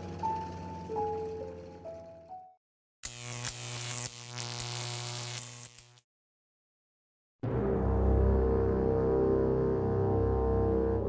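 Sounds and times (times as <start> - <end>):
background music: 0.0 - 2.6, 7.4 - 11.0
buzzing sound effect: 3.0 - 6.0.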